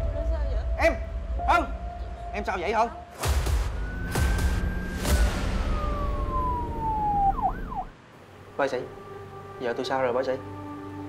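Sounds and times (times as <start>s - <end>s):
low rumble: 3.2s - 7.9s
ambulance siren wailing: 3.4s - 7.9s.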